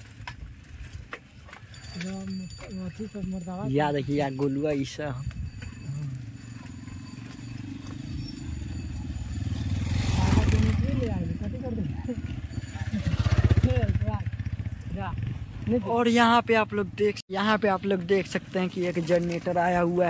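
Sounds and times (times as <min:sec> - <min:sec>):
small engine running: 0:05.7 - 0:15.8.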